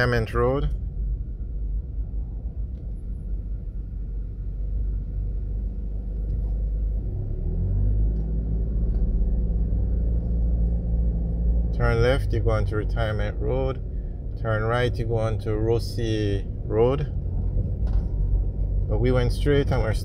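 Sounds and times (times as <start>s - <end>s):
car driving in traffic: 0.0s - 20.0s.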